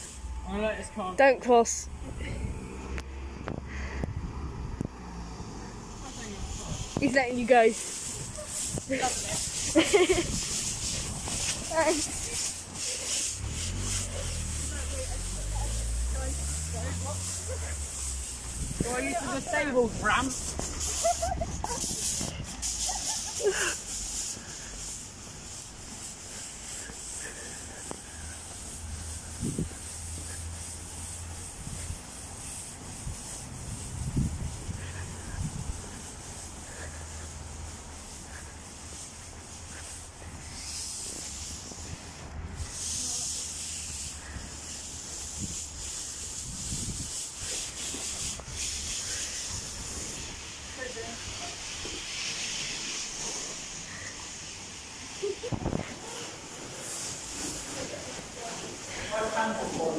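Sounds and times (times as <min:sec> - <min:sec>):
steady hiss: 0:00.0 - 0:59.9
costume fabric rustling: 0:05.1 - 0:59.9.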